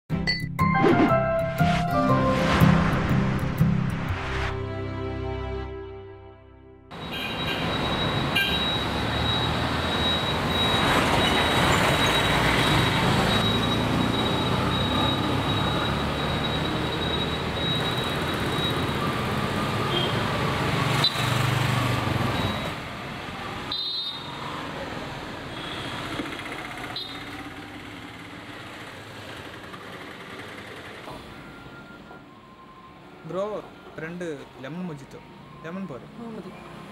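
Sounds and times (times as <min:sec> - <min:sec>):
road traffic noise: 0:00.7 - 0:36.9.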